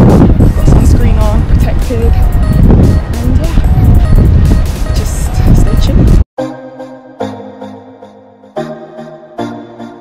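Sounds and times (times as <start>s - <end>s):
low rumble of street noise: 0.0s - 6.2s.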